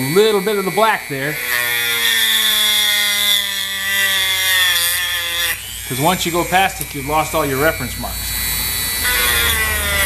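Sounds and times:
rotary tool grinding stone: 0:00.0 - 0:10.0.

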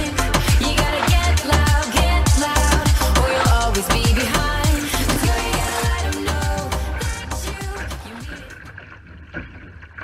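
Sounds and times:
background music: 0:00.0 - 0:08.8
water rushing along hull: 0:00.0 - 0:10.0.

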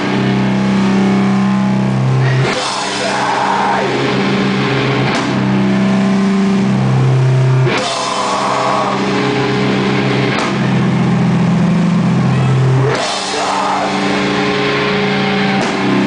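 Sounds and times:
sustained electric guitar chords: 0:00.0 - 0:16.0
drum kit playing: 0:02.1 - 0:16.0.

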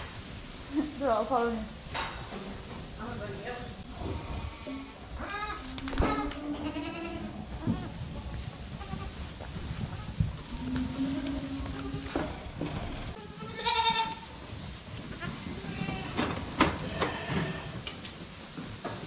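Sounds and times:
rumble of herd moving: 0:00.0 - 0:19.0
young goats bleating: 0:03.9 - 0:14.3, 0:15.1 - 0:17.8.

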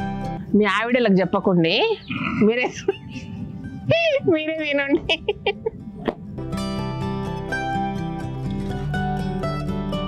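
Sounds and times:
background music: 0:00.0 - 0:10.0
people talking: 0:00.6 - 0:03.1, 0:03.9 - 0:05.6.

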